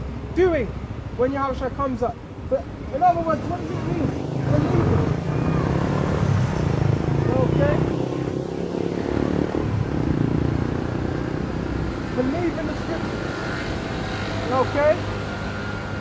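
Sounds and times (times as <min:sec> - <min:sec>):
traffic engine rumble: 0:00.0 - 0:16.0.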